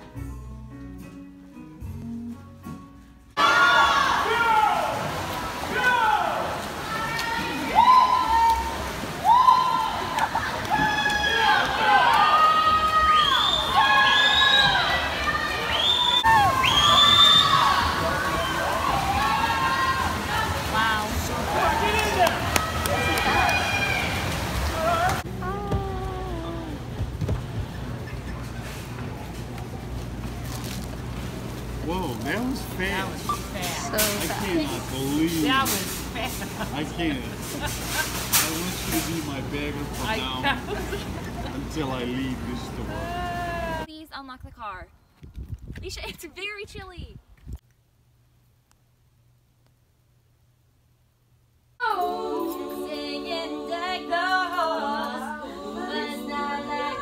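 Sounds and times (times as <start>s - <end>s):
quiet music: 0.0s - 3.4s
high drawn-out yells: 3.4s - 5.0s
spectators cheering and shouting: 3.4s - 26.7s
splashing water: 3.8s - 28.6s.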